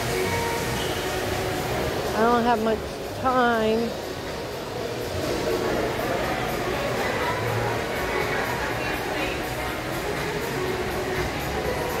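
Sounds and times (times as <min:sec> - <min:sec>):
indoor public space din: 0:00.0 - 0:12.0.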